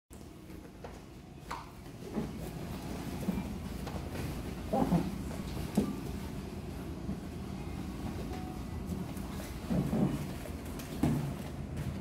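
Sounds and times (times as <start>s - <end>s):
low room rumble: 0.1s - 12.0s
thumps and shuffles on a mat: 9.0s - 12.0s.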